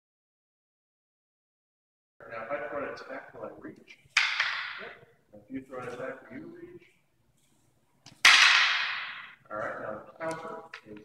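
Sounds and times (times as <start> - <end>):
wooden canes cracking together: 4.1 - 5.0, 8.0 - 9.4.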